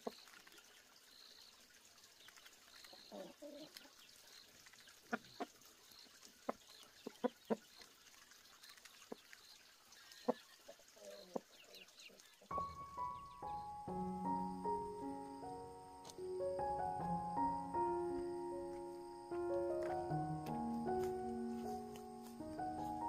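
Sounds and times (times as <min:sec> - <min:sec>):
music: 0:12.5 - 0:23.0.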